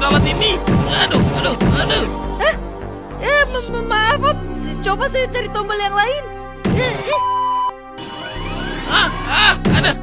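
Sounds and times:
background music: 0.0 - 10.0
electronic beep: 7.1 - 9.2
machine whirring rising in pitch: 8.0 - 9.6.

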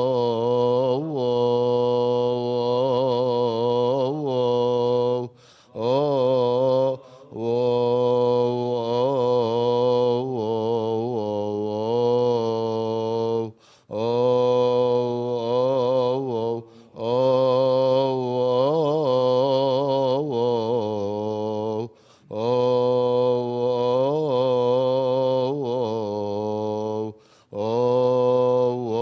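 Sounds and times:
man chanting a hymn: 0.0 - 29.0.

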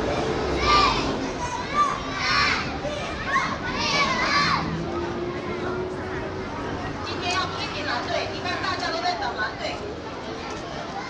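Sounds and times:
children shouting: 0.0 - 6.8
babble of voices: 0.0 - 11.0.

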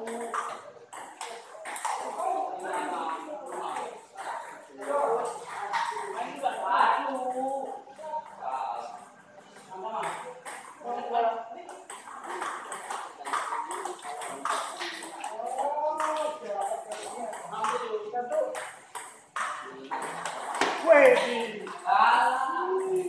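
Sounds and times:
table tennis balls clicking: 0.0 - 8.4, 9.9 - 11.0, 11.6 - 23.0
voices talking: 0.0 - 23.0.

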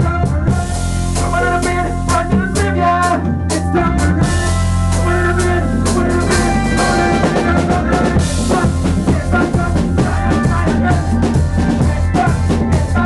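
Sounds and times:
band playing instrumental: 0.0 - 13.0
drum kit beat: 0.0 - 13.0.

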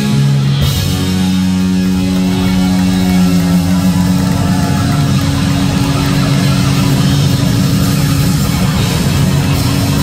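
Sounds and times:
hard rock band playing: 0.0 - 10.0.

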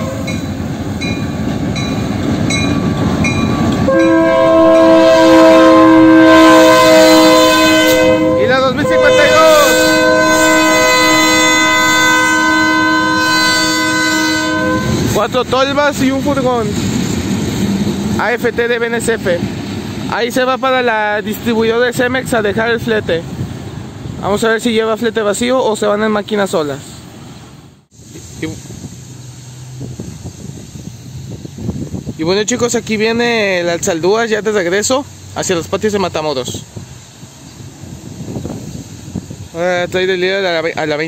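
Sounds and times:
locomotive air horn: 0.0 - 0.5, 3.6 - 15.1
freight train rumbling on rails: 0.0 - 41.0
outdoor hiss: 10.5 - 41.0.

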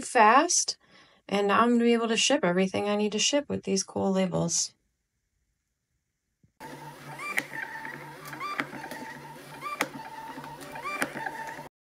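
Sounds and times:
label printer motor whine: 6.6 - 11.7
printer clicks: 6.6 - 11.7.

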